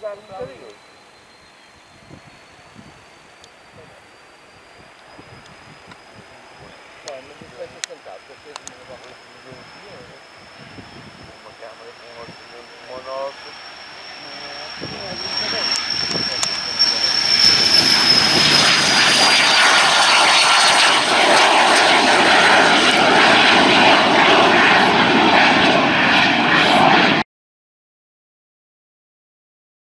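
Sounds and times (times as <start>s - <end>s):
high fan whine: 0.0s - 26.0s
jet engines at take-off power: 0.0s - 27.2s.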